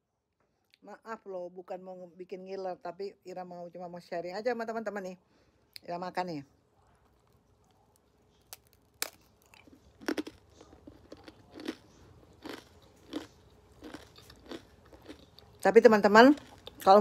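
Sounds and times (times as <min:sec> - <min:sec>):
person chewing crunchy cracker: 0:07.0 - 0:15.6, 0:16.3 - 0:17.0.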